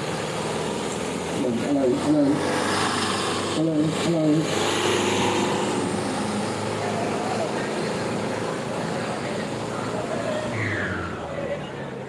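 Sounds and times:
tractor diesel engines under load: 0.0s - 12.0s.

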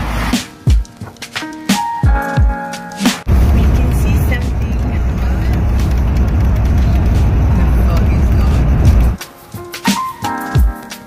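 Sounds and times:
bus engine and road noise: 0.0s - 0.4s, 3.3s - 9.2s.

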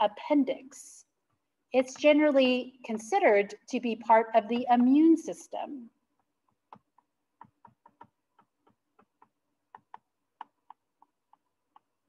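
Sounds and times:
stylus tapping on pen tablet: 6.1s - 12.0s.

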